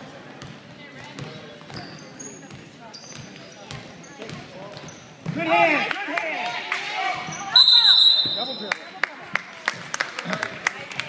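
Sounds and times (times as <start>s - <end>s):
referee's whistle: 7.5s - 8.8s.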